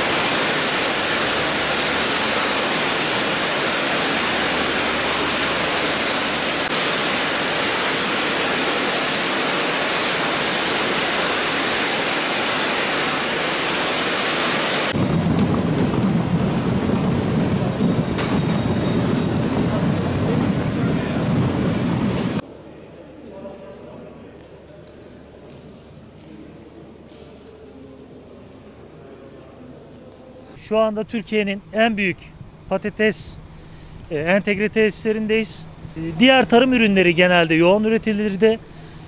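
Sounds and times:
machinery hissing: 0:00.0 - 0:22.4.

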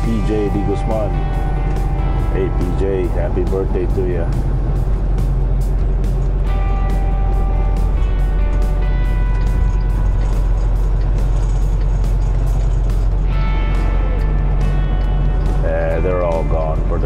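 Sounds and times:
background music with steady beat: 0:00.0 - 0:17.0
truck engine and road rumble: 0:00.0 - 0:17.0.

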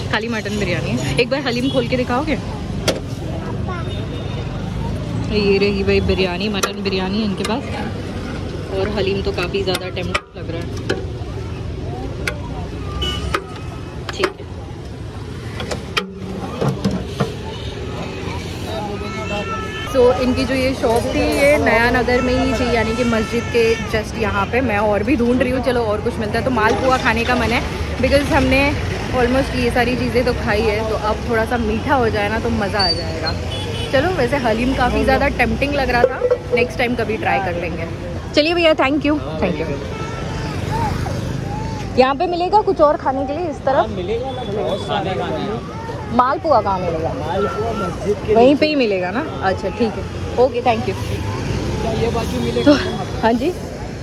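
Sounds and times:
faint voices of passers-by: 0:00.0 - 0:54.0
motor traffic rumble: 0:00.0 - 0:54.0.

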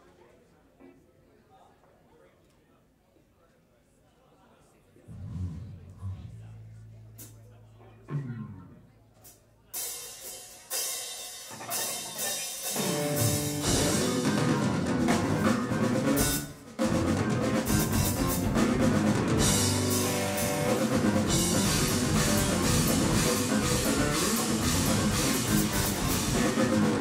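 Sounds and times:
live rock band playing: 0:09.2 - 0:27.0.

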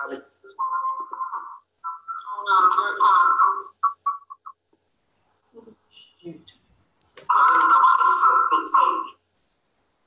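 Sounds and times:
echoing speech fragments: 0:00.0 - 0:04.4, 0:05.6 - 0:09.2.

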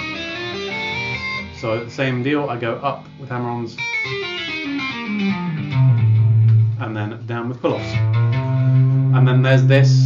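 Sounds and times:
electric guitar legato notes: 0:00.0 - 0:10.0.

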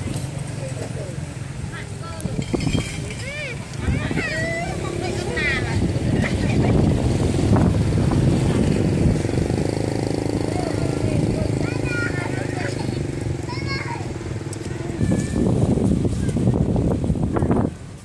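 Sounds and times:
voices talking: 0:00.0 - 0:17.6
engine running: 0:00.0 - 0:18.0.

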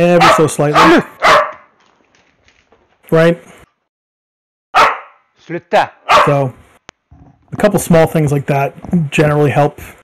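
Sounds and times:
man's voice: 0:00.0 - 0:01.2.

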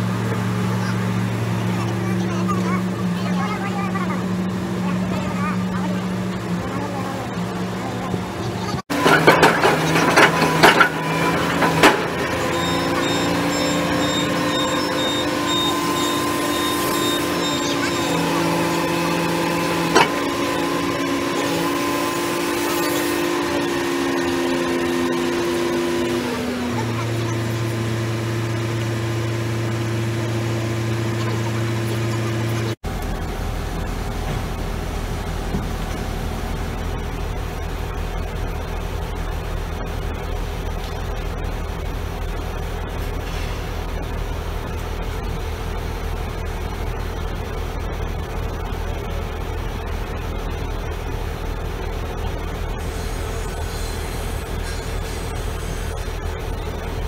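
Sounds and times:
piling rig engine whine: 0:00.0 - 0:57.0
machine hum: 0:02.5 - 0:57.0.

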